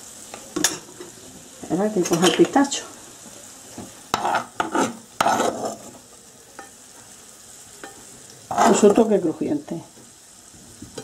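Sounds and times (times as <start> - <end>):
faint sizzle from hot pan: 0.0 - 11.0
metal spoon scraping frying pan: 2.0 - 2.6, 4.1 - 6.0, 7.8 - 9.1.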